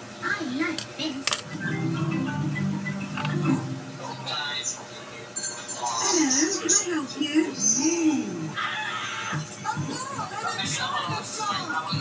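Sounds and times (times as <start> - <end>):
cartoon music on television: 1.5 - 4.9, 8.6 - 12.0.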